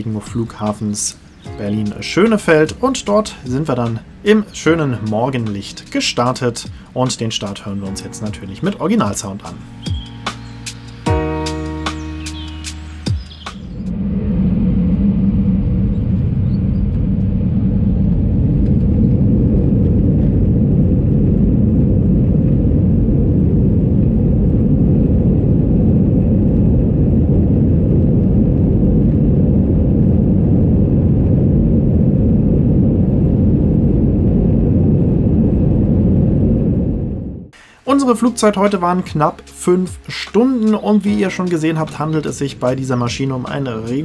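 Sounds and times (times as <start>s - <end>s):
jet engines rumbling on takeoff: 0.0s - 44.0s.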